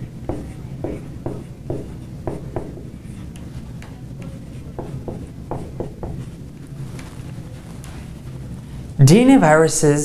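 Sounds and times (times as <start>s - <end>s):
marker writing on whiteboard: 0.0s - 9.0s
steady low hum: 0.0s - 10.0s.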